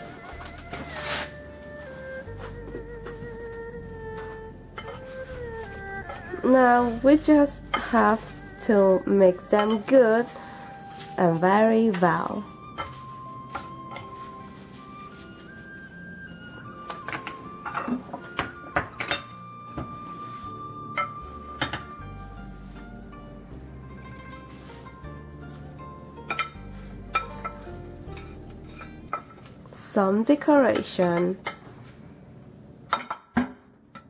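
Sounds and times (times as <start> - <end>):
background music with held notes: 0.0 - 32.8.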